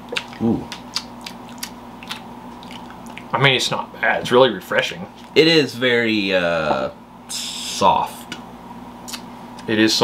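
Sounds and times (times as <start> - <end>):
lip smacks and mouth clicks: 0.0 - 3.3, 9.1 - 9.7
low steady hum: 0.0 - 10.0.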